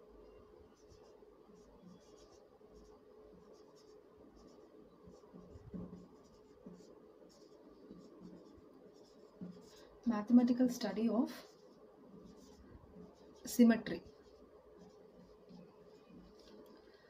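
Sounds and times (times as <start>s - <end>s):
faint steady hum: 0.0s - 17.0s
marker scratching on whiteboard: 0.2s - 16.9s.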